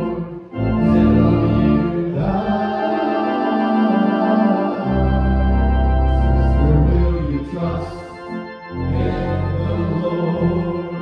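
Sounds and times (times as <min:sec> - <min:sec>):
men singing a hymn: 0:00.0 - 0:11.0
organ accompaniment: 0:00.0 - 0:11.0.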